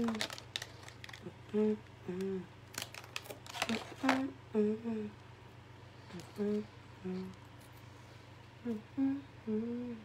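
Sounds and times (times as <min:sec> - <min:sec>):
woman humming: 0:01.2 - 0:02.6, 0:03.7 - 0:05.2, 0:06.0 - 0:07.5, 0:08.6 - 0:10.0.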